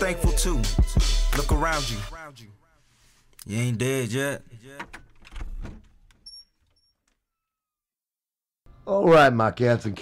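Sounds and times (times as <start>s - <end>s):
rap track: 0.0s - 2.8s, 3.4s - 4.9s.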